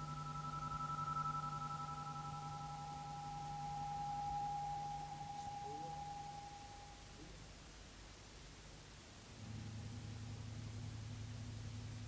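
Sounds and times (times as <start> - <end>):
low hum: 0.0 - 7.2, 9.4 - 12.0.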